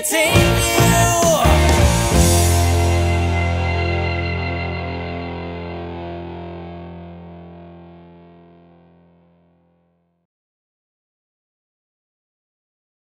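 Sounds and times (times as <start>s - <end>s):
distorted electric guitar chord ringing: 0.0s - 10.1s.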